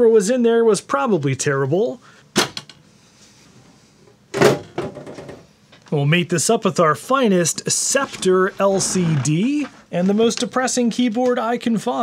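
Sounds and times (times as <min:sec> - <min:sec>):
metal computer case cover shutting: 0:04.4 - 0:05.4.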